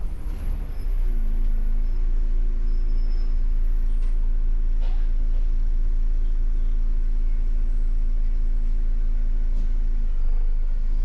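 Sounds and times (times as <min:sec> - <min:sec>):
bus engine rumbling at low revs: 0:00.0 - 0:11.0.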